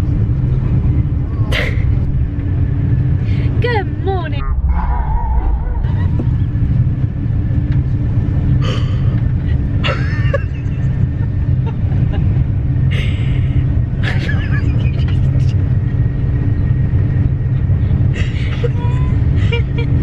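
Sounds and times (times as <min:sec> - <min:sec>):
train rumble and hum: 0:00.0 - 0:20.0
women laughing: 0:05.8 - 0:06.6, 0:09.8 - 0:13.4, 0:14.0 - 0:15.5, 0:18.2 - 0:20.0.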